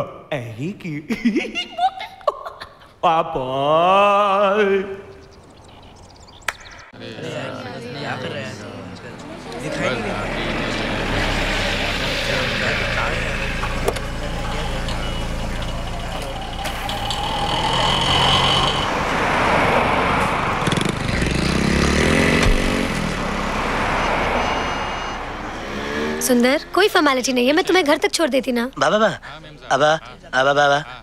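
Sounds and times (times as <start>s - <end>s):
cars driving past: 5.1s - 29.7s.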